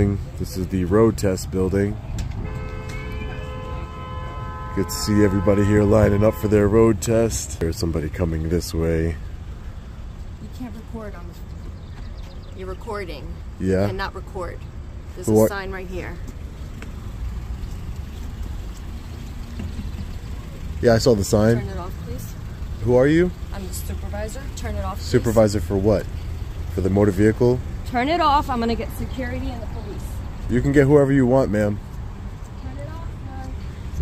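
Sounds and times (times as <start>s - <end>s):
road traffic rumbling: 0.0s - 34.0s.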